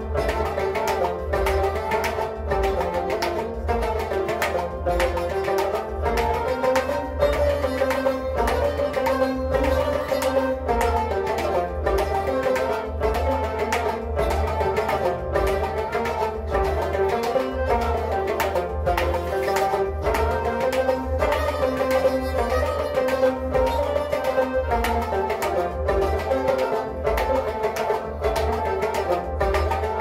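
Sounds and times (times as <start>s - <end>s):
plucked string instruments: 0.0s - 30.0s
steady percussive beat: 0.0s - 30.0s.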